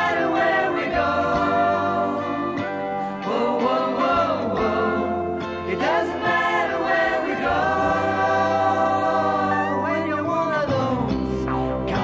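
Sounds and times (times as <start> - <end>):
voices singing long held notes: 0.0 - 10.9.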